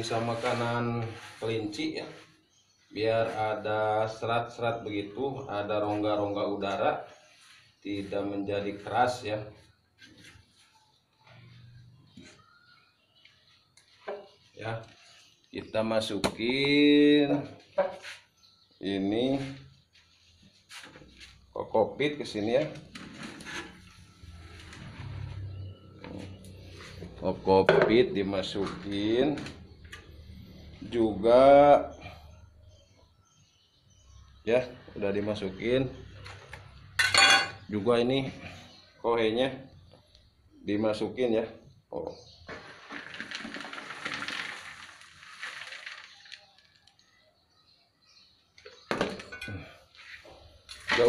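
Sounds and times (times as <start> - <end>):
soil rustling as poured: 42.5 - 47.1.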